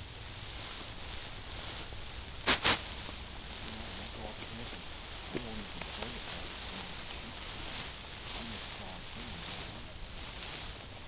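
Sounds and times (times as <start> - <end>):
background hiss: 0.0 - 11.0
dog whistle toots: 2.5 - 2.9.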